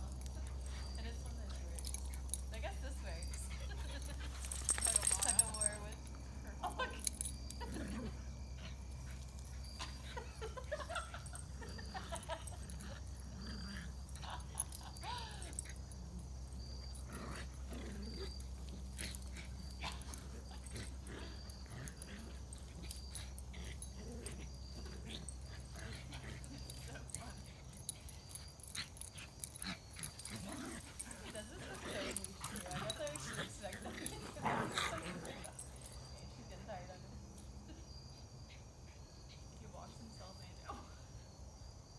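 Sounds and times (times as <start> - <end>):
dogs yipping and whimpering: 6.7 - 36.2.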